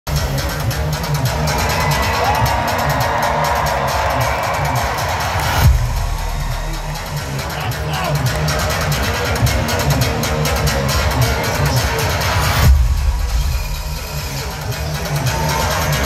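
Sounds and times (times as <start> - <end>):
crowd cheering: 1.1 - 9.9.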